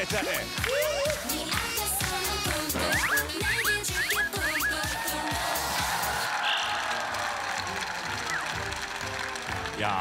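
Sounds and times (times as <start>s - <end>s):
dance music: 0.0s - 10.0s
audience applauding: 4.8s - 10.0s.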